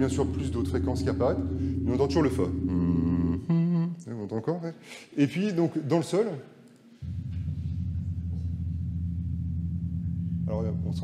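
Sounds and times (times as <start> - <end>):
steady low rumble: 0.0 - 4.0, 7.0 - 11.0.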